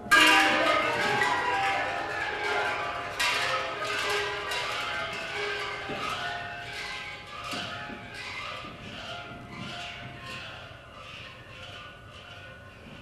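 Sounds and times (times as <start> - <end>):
metal percussion ringing: 0.0 - 13.0.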